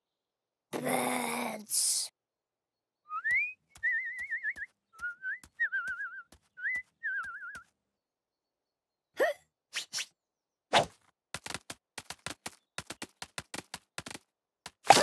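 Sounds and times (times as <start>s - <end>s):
whistled cartoon bird calls: 3.1s - 7.6s
light ticking steps: 3.1s - 7.8s.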